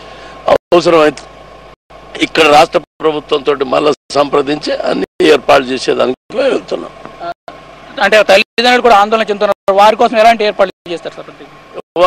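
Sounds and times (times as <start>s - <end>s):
steady hum: 0.0s - 12.0s
man talking: 2.2s - 7.0s.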